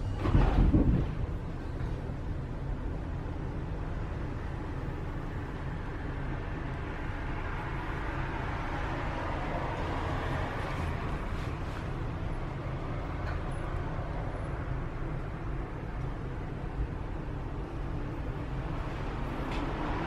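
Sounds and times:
tram wheels rumbling on track: 0.0s - 20.0s.

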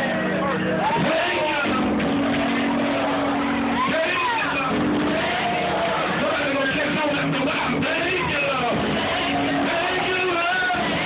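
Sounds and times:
voices calling out and singing: 0.0s - 11.0s.

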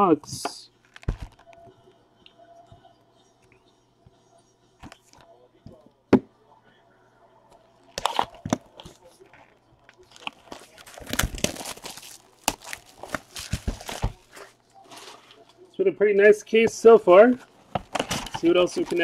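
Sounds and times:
plastic shrink-wrap tearing: 10.0s - 14.5s.

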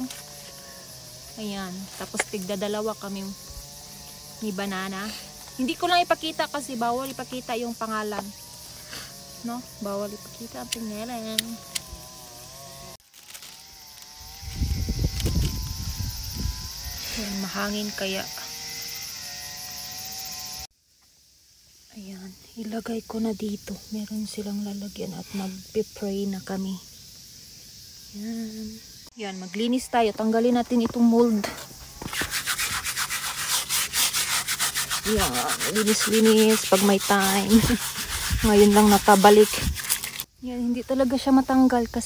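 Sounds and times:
wind buffeting microphone: 14.3s - 17.0s
hand brush scrubbing stone: 31.4s - 40.3s.

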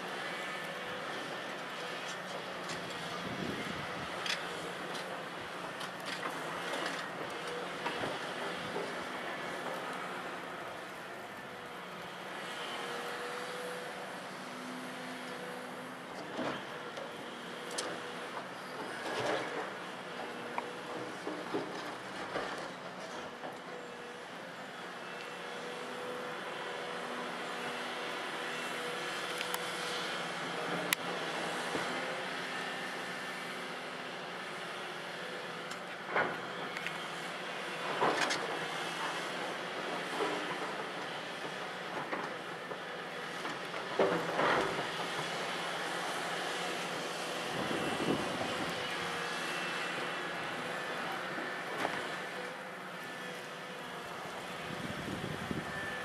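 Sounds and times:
excavator diesel engine running: 0.0s - 56.0s
hydraulic whine: 54.4s - 56.0s.

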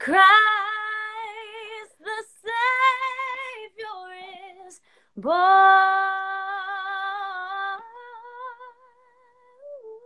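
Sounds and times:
woman singing a cappella: 0.0s - 10.0s.

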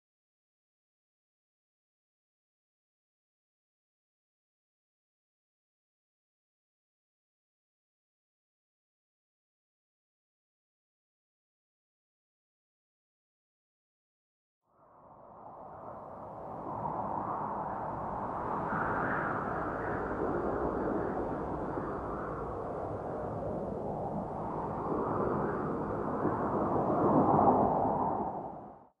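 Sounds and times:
rushing wind-like noise: 15.0s - 28.9s.

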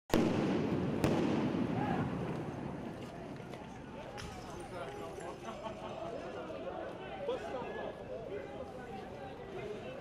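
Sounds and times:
crowd noise: 0.7s - 10.0s.

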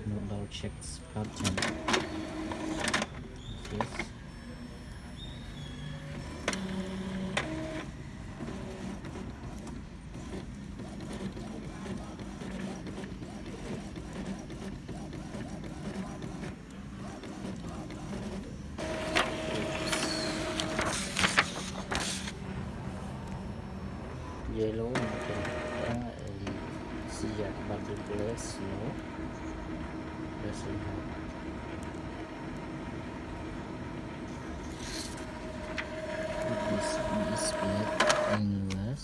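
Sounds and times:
printer motors running: 0.0s - 39.0s
printer clicks: 1.3s - 4.1s, 18.8s - 22.0s, 24.9s - 29.2s, 35.2s - 38.8s.

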